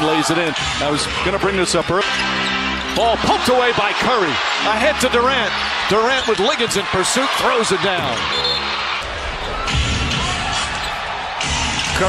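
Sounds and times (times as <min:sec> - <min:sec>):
arena crowd cheering: 0:00.0 - 0:12.0
basketball bouncing on court: 0:07.9 - 0:08.6.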